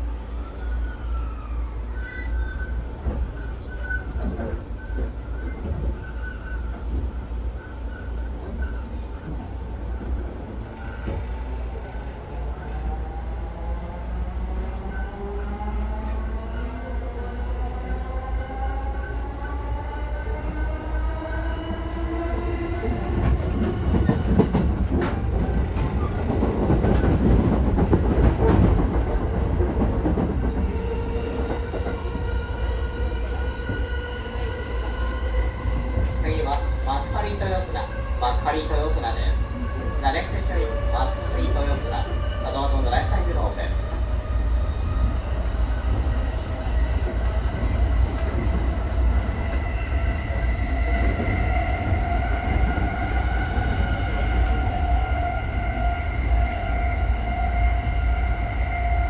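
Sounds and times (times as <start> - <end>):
wheels rumbling on rail: 0.0 - 59.0.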